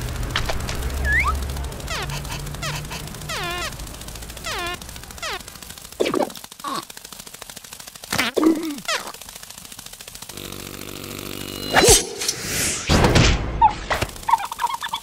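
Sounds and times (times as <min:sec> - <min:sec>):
low buzzing drone: 0:00.0 - 0:14.3
squeaky cartoon vocal noises: 0:01.9 - 0:03.8, 0:04.4 - 0:05.4, 0:13.6 - 0:15.0.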